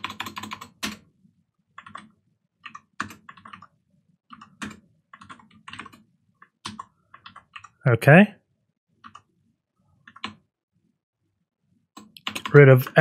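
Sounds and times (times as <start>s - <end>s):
typing on computer keyboard: 0.0s - 1.1s, 1.7s - 7.8s, 9.0s - 9.3s, 10.0s - 10.4s, 12.0s - 13.0s.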